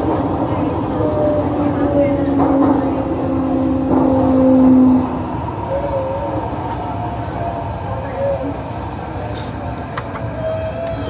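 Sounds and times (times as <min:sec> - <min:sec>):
train rumble: 0:00.0 - 0:11.0.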